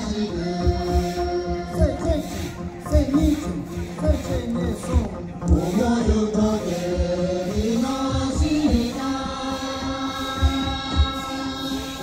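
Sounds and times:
voices singing chant-like melody: 0.0s - 12.0s.

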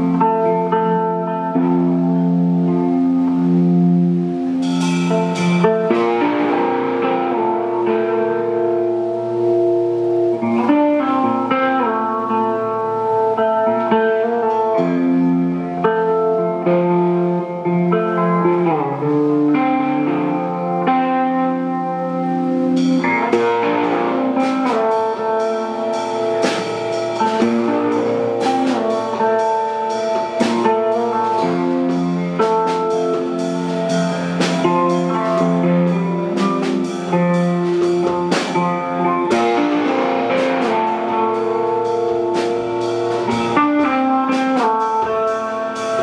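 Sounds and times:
electric guitar chords: 0.0s - 46.0s
drum kit and cymbal hits: 1.4s - 21.2s, 22.2s - 46.0s.

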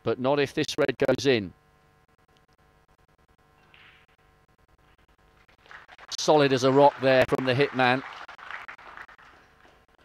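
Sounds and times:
audience applause: 5.5s - 9.9s.

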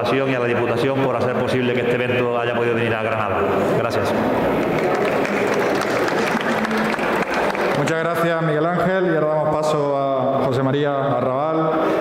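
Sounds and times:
audience clapping: 4.3s - 8.3s.

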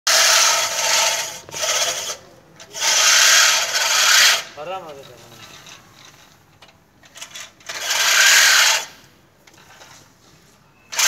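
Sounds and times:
push reel mower cutting grass: 0.1s - 4.5s, 7.2s - 8.9s.

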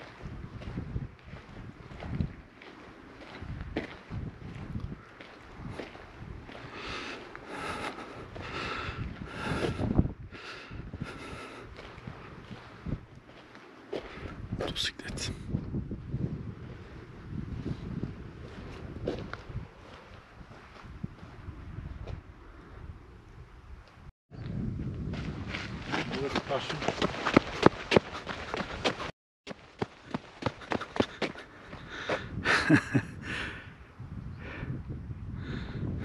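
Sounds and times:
wind buffeting microphone: 0.0s - 36.0s
people laughing: 32.4s - 33.2s.

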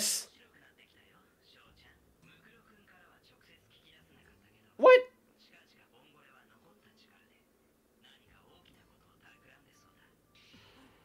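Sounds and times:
very faint speech: 0.0s - 11.0s.

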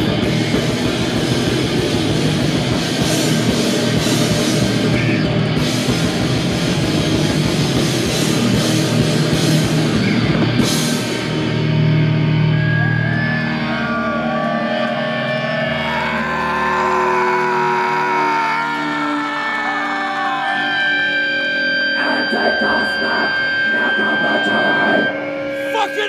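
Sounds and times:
distorted electric guitars feedback: 0.0s - 26.0s.

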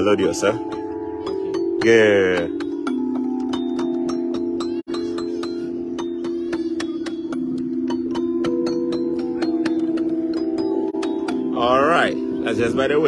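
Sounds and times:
xylophone played with mallets: 0.0s - 13.0s.

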